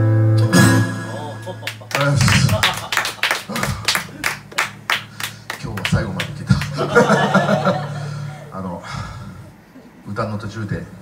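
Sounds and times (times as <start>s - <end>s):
small audience clapping: 1.2s - 7.8s.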